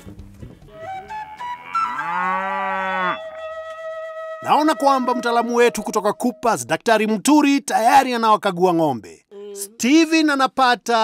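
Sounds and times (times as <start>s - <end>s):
background music note: 0.0s - 7.1s
cow mooing: 1.0s - 3.7s.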